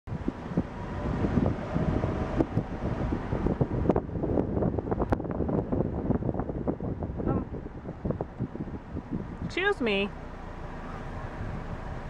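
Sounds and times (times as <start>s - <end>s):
low road noise: 0.0s - 12.0s
gusty pops: 0.1s - 9.7s
wind buffeting microphone: 0.1s - 12.0s.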